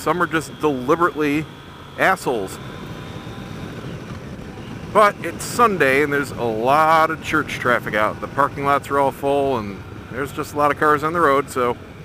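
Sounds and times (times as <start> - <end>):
motorcycle engine cruising: 0.0 - 12.0
wind noise: 0.0 - 12.0.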